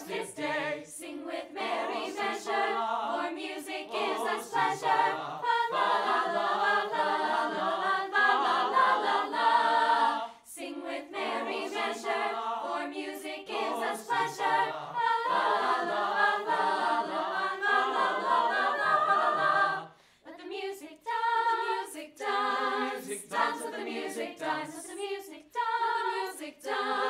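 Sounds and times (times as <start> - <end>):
choir singing in harmony: 0.0 - 27.0.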